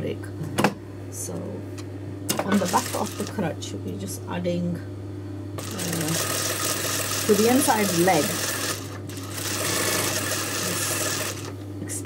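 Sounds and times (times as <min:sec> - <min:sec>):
sewing machine stitching: 0:05.6 - 0:11.6.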